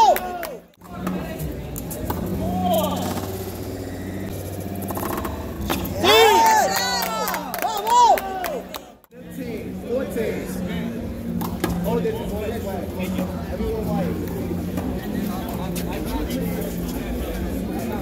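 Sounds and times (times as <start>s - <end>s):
people talking indistinctly: 0.8s - 18.0s
steady low hum: 1.4s - 6.0s.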